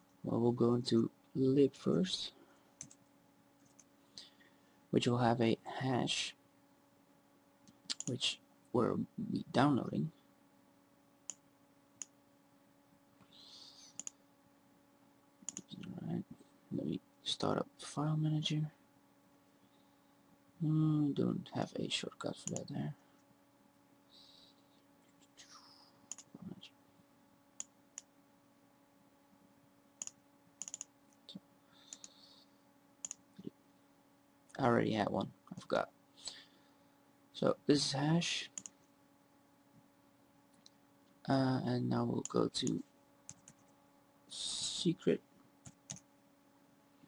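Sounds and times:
faint electrical hum: 0.0s - 47.0s
computer mouse clicks: 2.8s - 3.9s, 7.6s - 8.1s, 13.8s - 14.2s, 15.4s - 15.9s, 22.4s - 22.7s, 26.1s - 26.3s, 30.0s - 30.9s, 31.8s - 32.2s, 33.0s - 33.5s, 38.6s - 38.9s, 42.2s - 43.8s, 45.6s - 46.1s.

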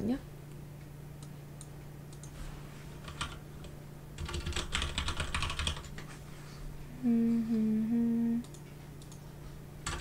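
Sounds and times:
computer keyboard typing: 3.0s - 6.1s.

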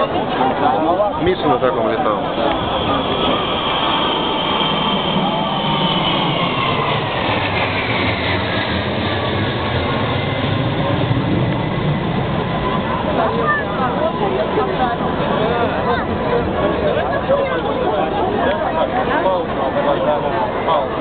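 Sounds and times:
crowd chatter: 0.0s - 21.0s
jet engines whining overhead: 0.0s - 21.0s
low jet rumble: 0.0s - 21.0s.

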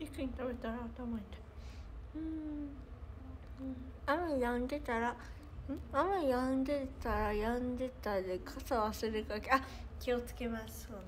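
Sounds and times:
woman humming: 2.1s - 4.0s.

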